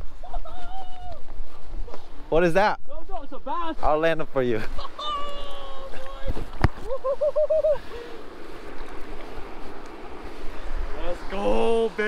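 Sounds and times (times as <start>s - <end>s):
man whooping excitedly: 0.2s - 1.2s, 4.9s - 6.0s
lake water washing on rocks: 4.9s - 12.0s.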